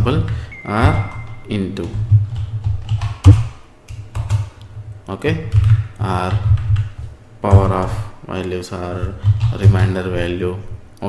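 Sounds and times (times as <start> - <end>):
computer keyboard keystrokes: 1.0 - 4.5.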